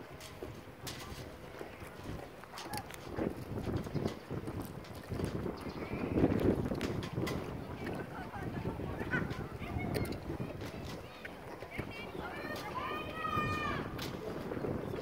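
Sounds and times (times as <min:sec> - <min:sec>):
faint voices: 0:00.0 - 0:15.0
wind buffeting microphone: 0:00.0 - 0:15.0.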